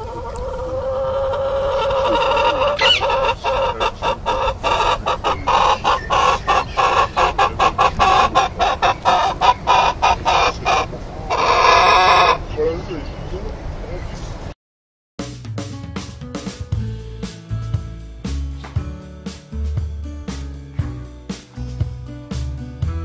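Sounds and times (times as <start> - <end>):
chicken calling and clucking: 0.0 - 12.6.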